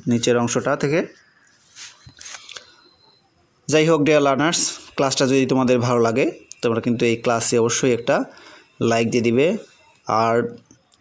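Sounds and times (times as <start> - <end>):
man speaking: 0.0 - 1.2, 3.7 - 10.7.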